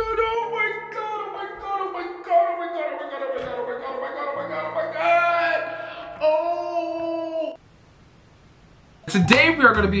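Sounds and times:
man singing in falsetto: 0:00.0 - 0:07.6.

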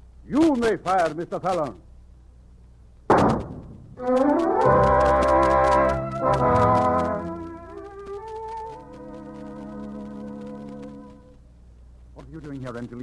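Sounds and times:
pistol shot: 0:03.1 - 0:03.8
brass-led orchestral music: 0:04.0 - 0:11.3.

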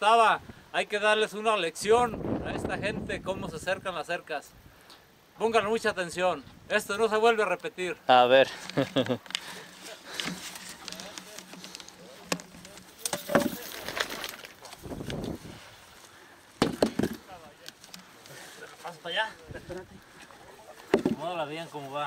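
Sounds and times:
stones scraping and rustling: 0:08.4 - 0:22.0.

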